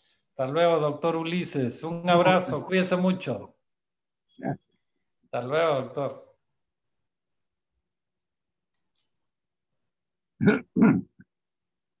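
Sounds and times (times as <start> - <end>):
man laughing: 2.2 - 2.7.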